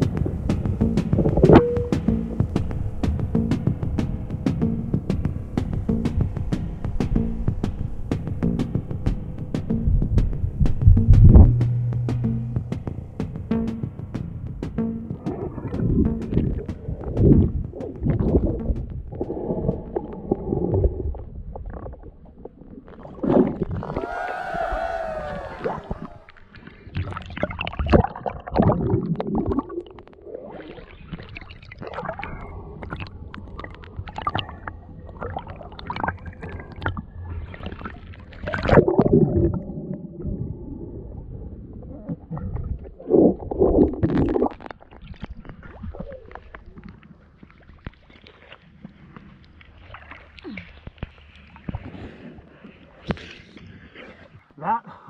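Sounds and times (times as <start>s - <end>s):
water sloshing and gurgling: 0.0s - 24.0s, 25.4s - 54.6s
water splashes and knocks: 9.6s - 20.0s.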